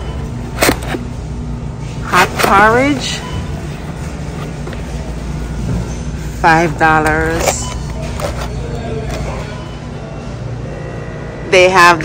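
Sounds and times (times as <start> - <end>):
low store rumble: 0.0 - 12.0.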